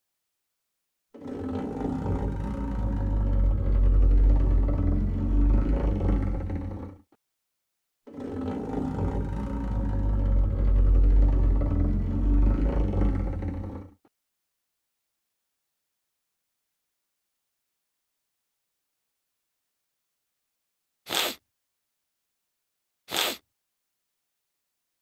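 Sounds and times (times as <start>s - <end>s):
deep rumbling monster roar: 1.2s - 7.2s, 8.1s - 14.1s.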